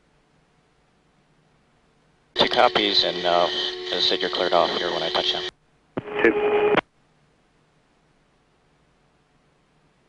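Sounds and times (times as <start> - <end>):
steady hum: 0.0 - 10.0
aircraft radio transmission: 2.4 - 6.8
radio speech: 2.4 - 6.8.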